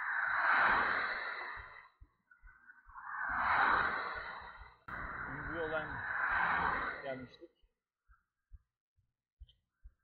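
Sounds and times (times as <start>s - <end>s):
rushing noise: 0.0s - 2.0s, 2.9s - 7.4s.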